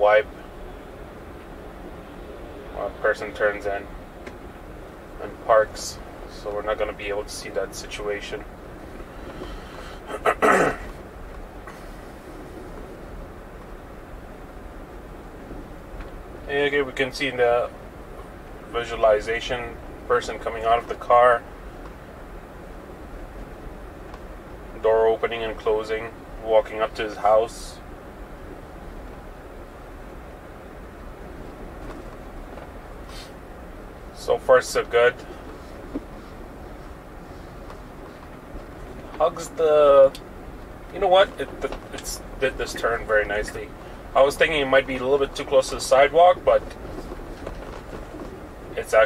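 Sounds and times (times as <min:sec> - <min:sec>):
car road noise hum: 0:00.0 - 0:49.0
man clearing throat: 0:10.1 - 0:11.0.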